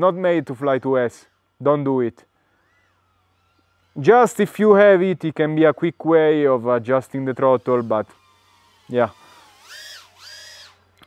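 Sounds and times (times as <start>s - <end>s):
drone motors whining: 0.0s - 11.0s.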